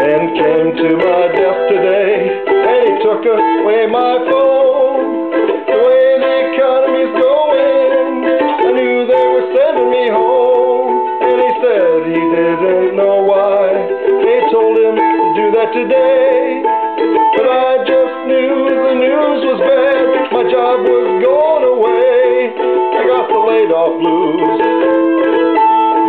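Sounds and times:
man singing blues: 0.0s - 26.0s
mandolin strumming: 0.0s - 26.0s.

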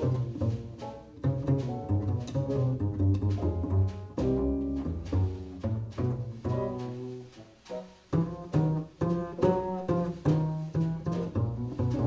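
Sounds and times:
plucked double bass: 0.0s - 12.0s.

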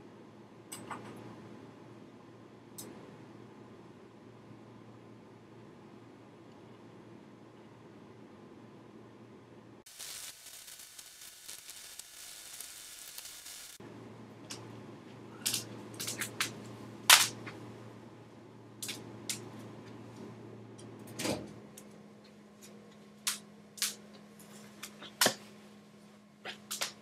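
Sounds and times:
low steady hum: 0.0s - 9.9s, 13.7s - 27.0s
steady hiss: 9.8s - 13.8s.

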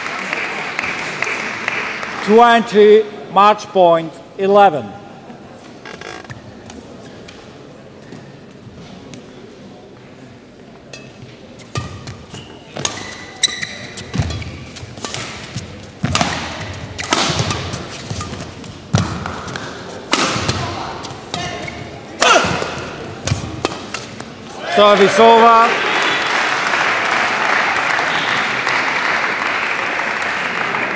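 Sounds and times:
low hall murmur: 4.0s - 30.9s
racket striking shuttlecock: 10.9s - 24.4s
shoe squeaks on court floor: 11.0s - 14.7s.

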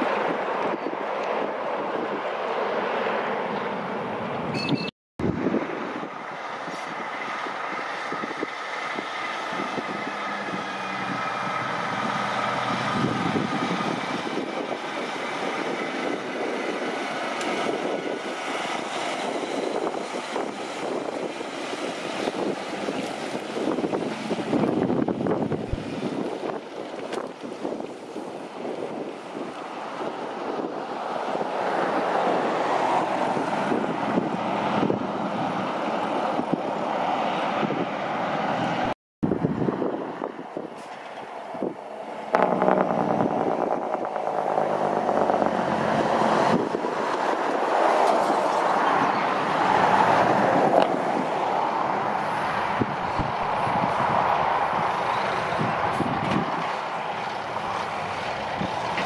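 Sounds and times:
diesel truck engine and tyres: 0.0s - 59.0s
other vehicle passing: 5.2s - 59.0s.

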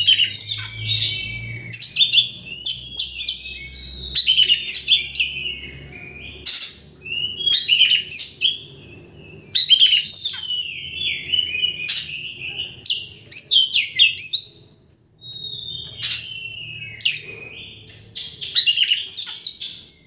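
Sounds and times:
bird singing whistles and harsh notes: 0.0s - 20.0s.

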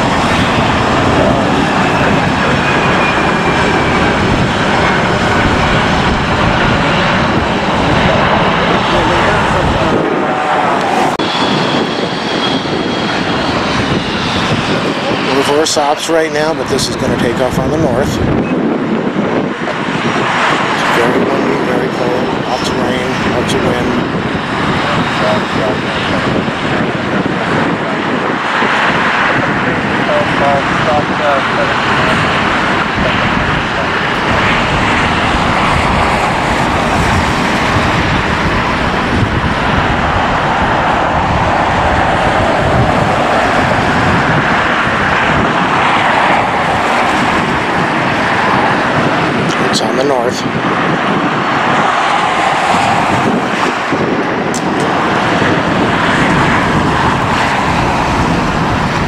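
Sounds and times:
jet engines roaring: 0.0s - 59.0s.

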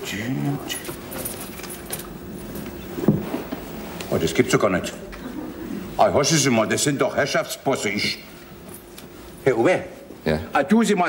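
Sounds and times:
rummaging in jacket pocket: 0.6s - 4.2s, 8.3s - 10.2s.

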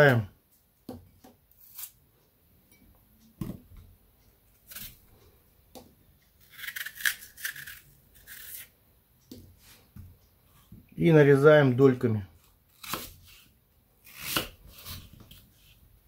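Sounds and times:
knife cutting through apple: 1.5s - 2.0s, 4.5s - 5.0s, 6.4s - 8.7s, 12.4s - 15.8s.

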